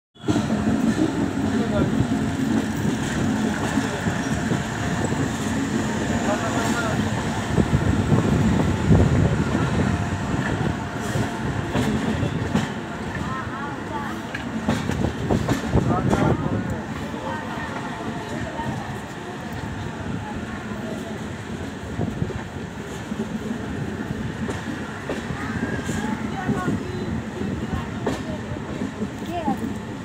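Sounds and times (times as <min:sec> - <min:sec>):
train wheels rumbling on rails: 0:00.2 - 0:30.0
wind noise: 0:07.0 - 0:12.6.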